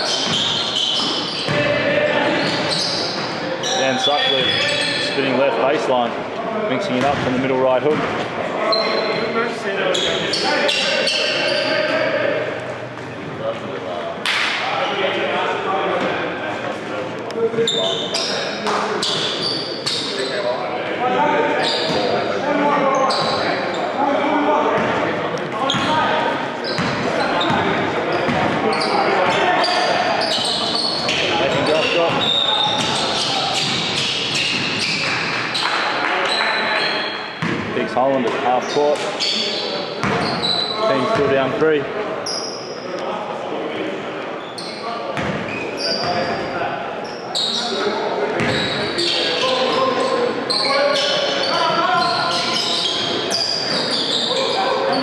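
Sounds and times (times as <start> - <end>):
players calling out: 0.0 - 41.6, 44.4 - 55.0.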